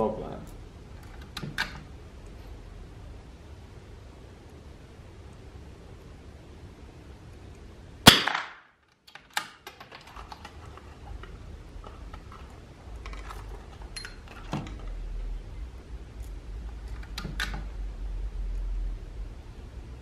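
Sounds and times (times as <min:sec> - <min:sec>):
rifle shot: 0:08.0 - 0:08.7.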